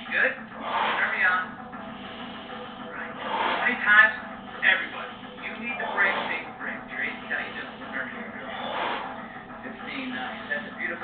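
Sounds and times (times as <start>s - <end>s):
instructor talking on television: 0.0s - 1.6s, 3.4s - 9.0s, 9.6s - 11.0s.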